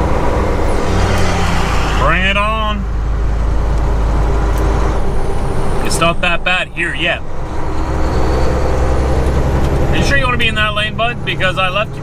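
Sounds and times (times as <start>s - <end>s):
diesel engine drone: 0.0s - 12.0s
road and tyre noise: 0.0s - 12.0s.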